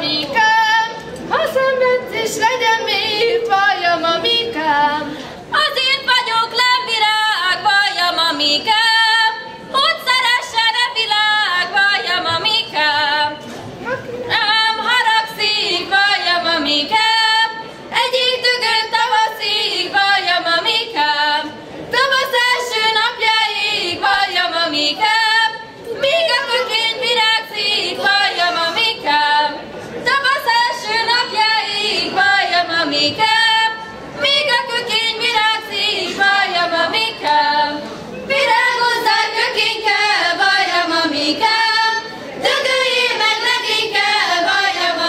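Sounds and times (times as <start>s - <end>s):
girls singing folk song: 0.0s - 13.4s, 14.3s - 45.0s.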